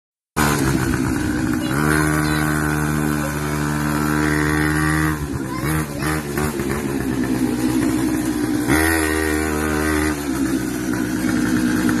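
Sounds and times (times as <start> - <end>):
small atv engine running: 0.4 - 12.0.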